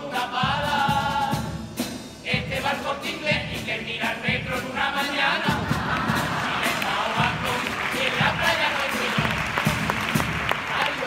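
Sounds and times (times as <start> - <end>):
carnival band music: 0.0 - 11.0
audience applauding: 5.7 - 11.0.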